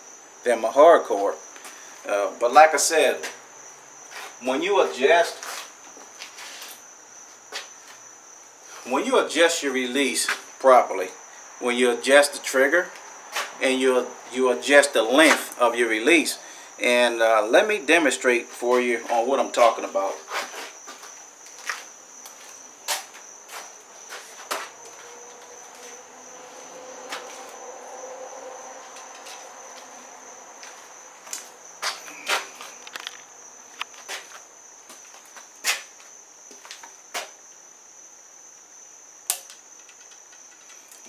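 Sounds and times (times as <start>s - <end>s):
high-pitched whine: 24.2s - 33.2s
bow equipment clicks and knocks: 39.3s - 41.0s.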